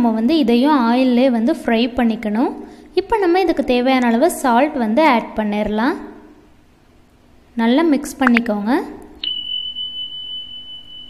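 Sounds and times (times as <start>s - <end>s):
high-pitched electronic beep: 9.2s - 11.0s.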